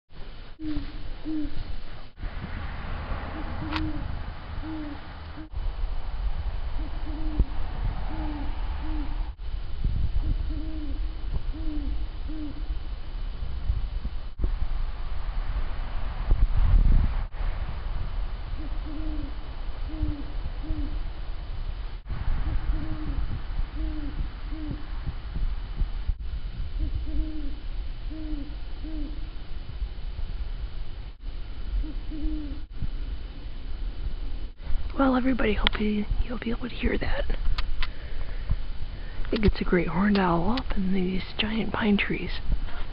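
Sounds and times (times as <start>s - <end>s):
low microphone rumble: 0.1s - 42.9s
owls hooting: 0.6s - 1.7s, 3.2s - 5.6s, 6.6s - 9.4s, 10.2s - 12.8s, 18.6s - 21.0s, 22.4s - 24.9s, 26.8s - 29.3s, 31.7s - 32.7s.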